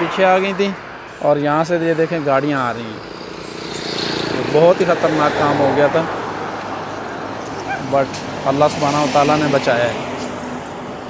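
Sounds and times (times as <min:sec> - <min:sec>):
person speaking: 0:00.0 - 0:03.0
roadside traffic noise: 0:00.0 - 0:11.0
high-pitched animal-like call: 0:01.1 - 0:04.4.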